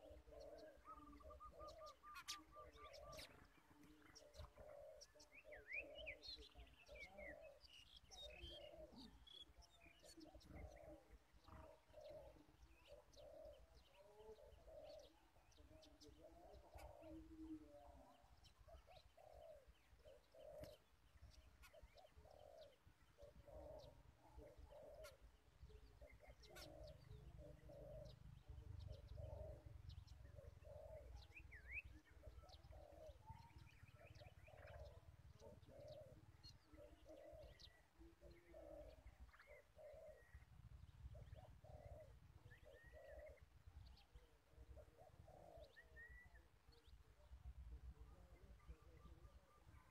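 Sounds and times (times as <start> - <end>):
dove cooing: 0.0 - 49.9
small birds chirping: 0.0 - 49.9.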